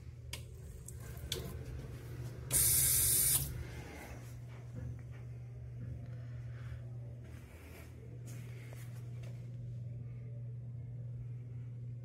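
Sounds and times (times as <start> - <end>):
low room hum: 0.0 - 12.0
faucet water hissing: 2.5 - 3.4.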